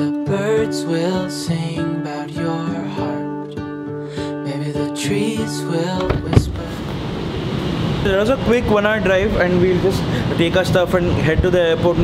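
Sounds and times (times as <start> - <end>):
car door latch click: 6.0 - 6.8
steady rushing noise: 6.1 - 12.0.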